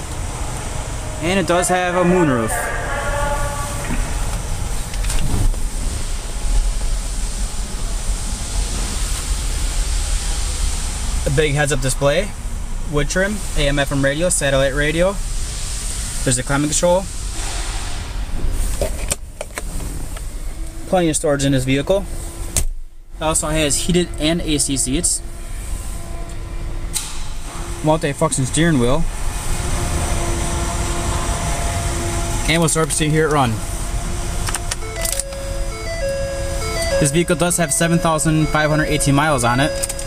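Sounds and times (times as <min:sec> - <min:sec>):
steady airy hiss: 0:00.0 - 0:40.0
steady low engine rumble: 0:00.0 - 0:40.0
electronic beeping melody: 0:34.8 - 0:40.0.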